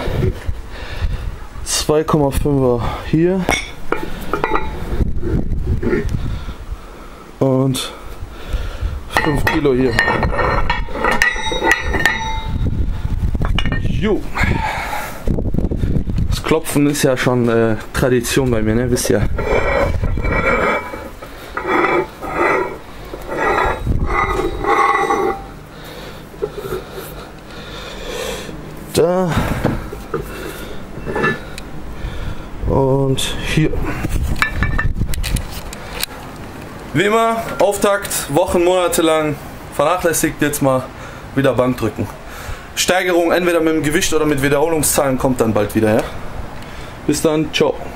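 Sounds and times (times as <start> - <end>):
camera handling rumble: 34.0 - 36.8.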